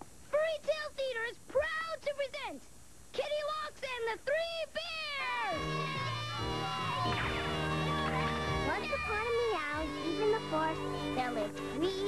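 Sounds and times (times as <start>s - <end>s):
cartoon music with held chords: 5.6s - 12.0s.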